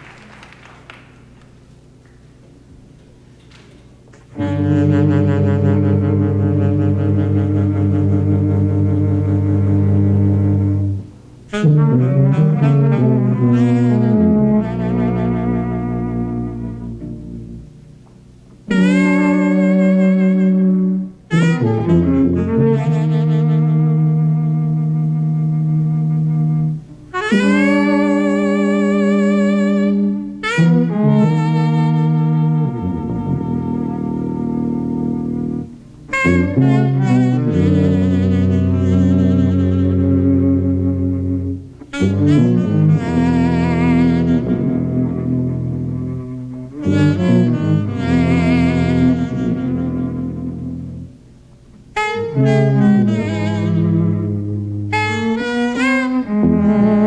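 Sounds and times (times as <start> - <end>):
low tuba notes: 0.0 - 57.0
cello notes: 2.5 - 57.0
saxophone with vibrato: 4.2 - 17.8, 18.7 - 51.2, 51.8 - 57.0.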